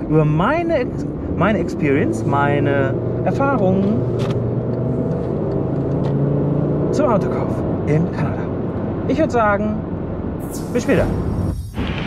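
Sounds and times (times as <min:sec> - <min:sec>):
car engine hum: 0:00.0 - 0:12.0
road and tyre noise: 0:00.0 - 0:12.0.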